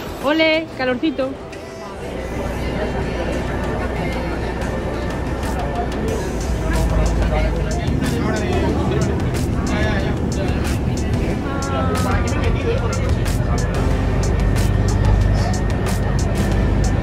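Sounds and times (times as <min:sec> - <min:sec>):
bus rumbling in motion: 0:00.0 - 0:17.0.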